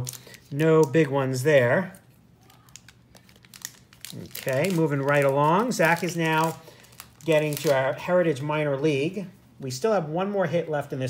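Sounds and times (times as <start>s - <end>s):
cards rustling: 1.9s - 8.0s.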